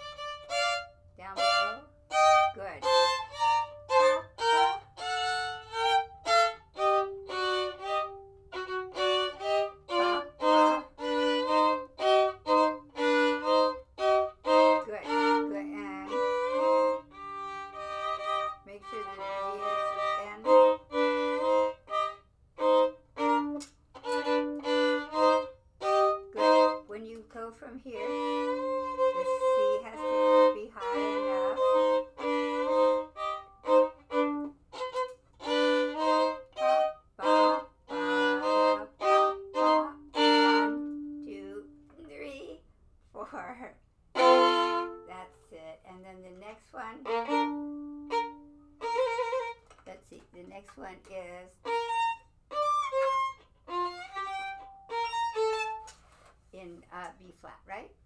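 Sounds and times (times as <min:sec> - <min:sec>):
solo violin phrases: 0:00.0 - 0:42.6, 0:44.1 - 0:50.2, 0:51.0 - 0:56.0.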